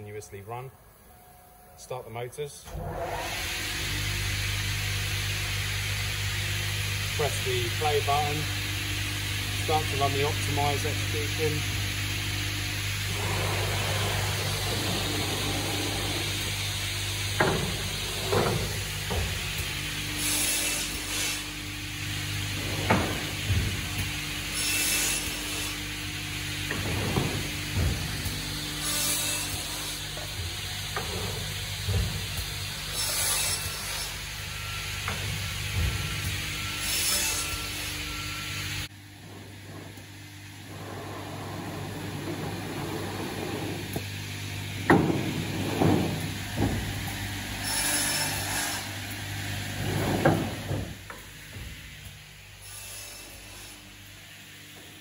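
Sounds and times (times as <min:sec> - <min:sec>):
saw motors humming: 0:02.7 - 0:55.0.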